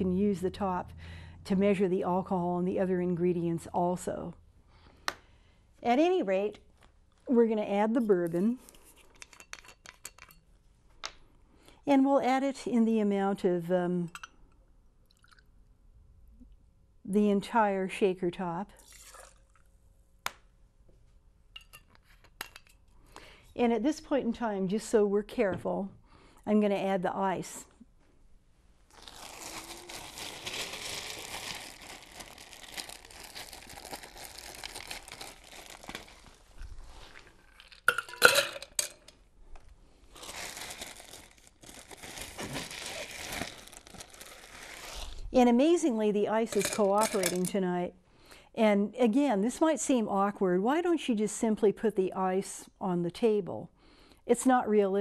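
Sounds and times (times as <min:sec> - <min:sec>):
liquid pouring into metal shaker: 0:18.8 - 0:19.6
ice cubes clinking into metal shaker: 0:37.6 - 0:39.0, 0:46.5 - 0:47.5.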